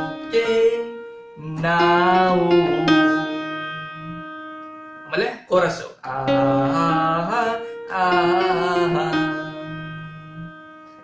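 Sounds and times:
electronic keyboard note ringing: 0:00.0 - 0:05.2, 0:06.3 - 0:11.0.

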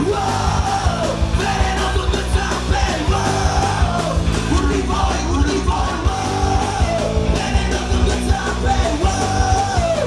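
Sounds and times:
punk rock band playing loud: 0:00.0 - 0:10.0
shouted lead vocal: 0:00.0 - 0:10.0.

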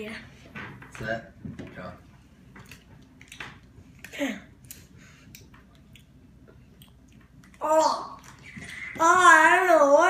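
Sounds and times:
wet chewing clicks: 0:02.6 - 0:07.6.

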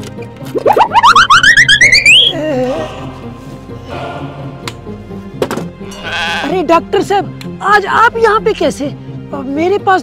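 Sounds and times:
rising warbling comic tone: 0:00.6 - 0:02.4.

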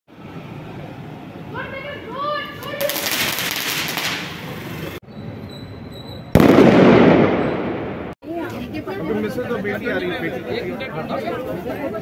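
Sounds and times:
firework bang: 0:06.3 - 0:08.2.

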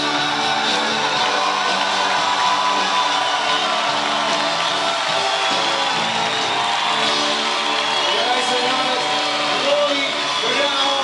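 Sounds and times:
live band with acoustic guitars: 0:00.0 - 0:11.0.

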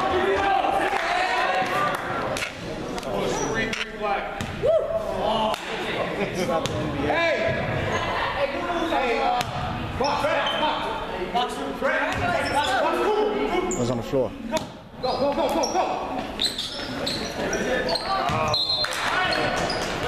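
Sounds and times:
sneakers squeaking: 0:01.7 - 0:05.1, 0:06.6 - 0:10.9, 0:12.0 - 0:20.0.

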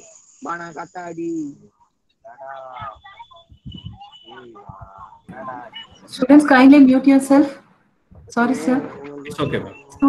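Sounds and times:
faint background voices: 0:00.0 - 0:10.0
brief high tone: 0:02.5 - 0:06.1, 0:08.6 - 0:10.0.

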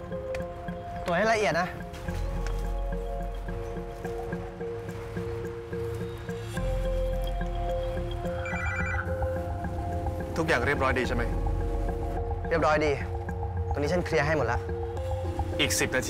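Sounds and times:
high electronic tone: 0:08.4 - 0:09.1.

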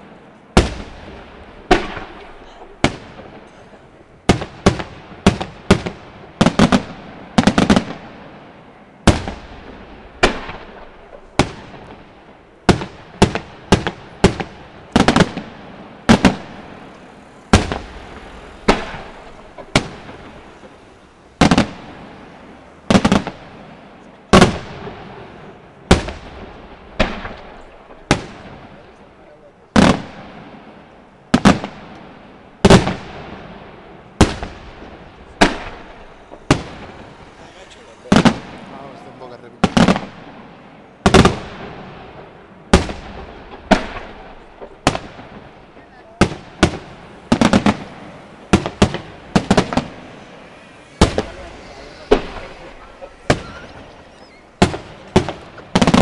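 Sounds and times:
firework shells bursting: 0:34.1 - 0:56.0.

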